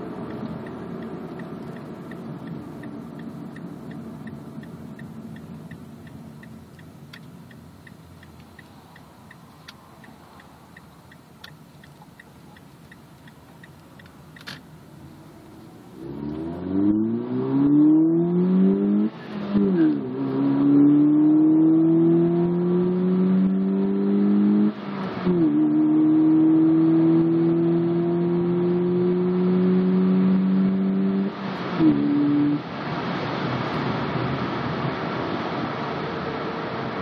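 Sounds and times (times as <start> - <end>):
road and wind noise: 0.0 - 37.0
car engine revving at full throttle: 13.4 - 37.0.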